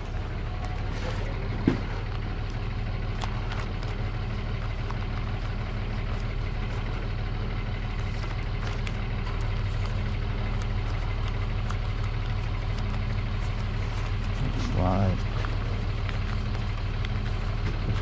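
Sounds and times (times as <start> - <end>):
low mechanical hum: 0.0 - 18.0
person's voice: 14.4 - 15.4.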